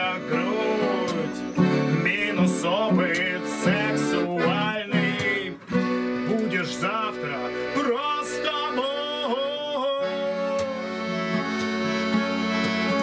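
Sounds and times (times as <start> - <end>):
man singing: 0.0 - 11.3
acoustic guitar: 0.0 - 13.0.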